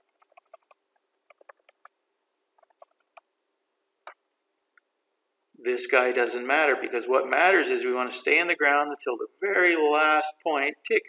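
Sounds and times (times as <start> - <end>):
small clicks: 0.0 - 2.0
faint steady hum: 0.0 - 11.0.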